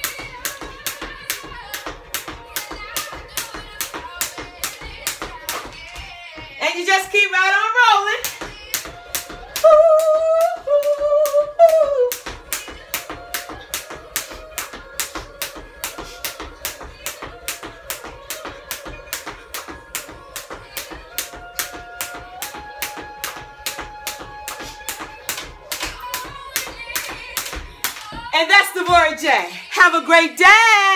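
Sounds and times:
jump rope slapping the floor: 0.0 - 7.1, 8.1 - 29.2
woman singing long notes: 8.6 - 13.8.

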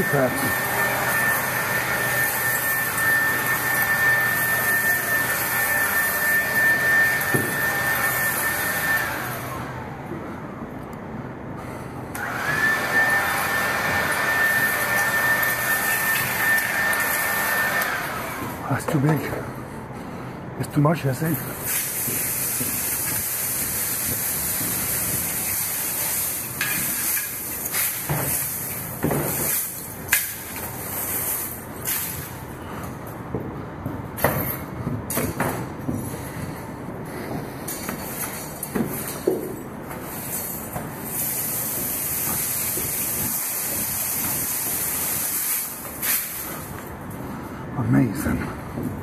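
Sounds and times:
broom bristles scraping floor: 21.6 - 32.4, 35.9 - 46.9.

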